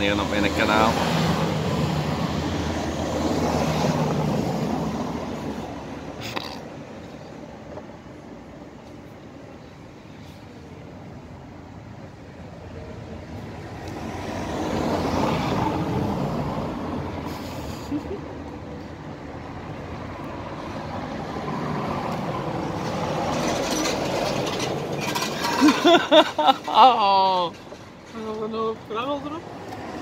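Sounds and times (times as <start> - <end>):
heavy road traffic passing: 0.0 - 30.0.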